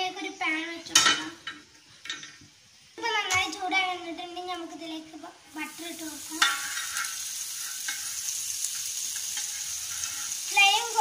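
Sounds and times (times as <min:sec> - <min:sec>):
butter sizzling on griddle: 0:02.9 - 0:11.0
metal spoon scraping pan: 0:06.3 - 0:10.5.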